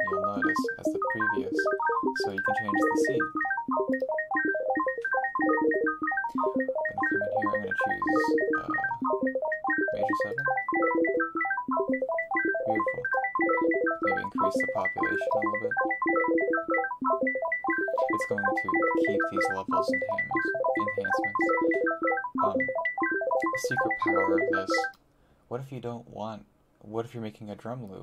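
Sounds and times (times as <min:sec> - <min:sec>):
bright synth pluck notes: 0:00.0 - 0:24.9.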